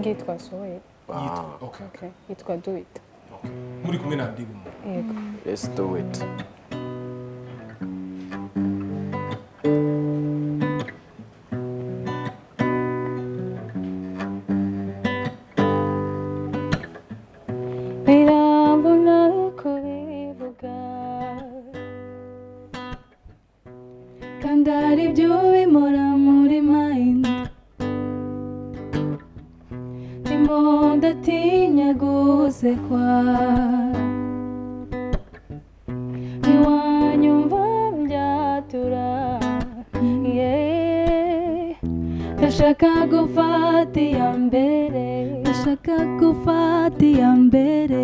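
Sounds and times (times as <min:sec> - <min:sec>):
acoustic guitar strumming: 0:00.0 - 0:00.8, 0:03.3 - 0:48.0
woman singing: 0:18.0 - 0:21.9, 0:24.4 - 0:27.6, 0:30.2 - 0:34.3, 0:36.4 - 0:48.0.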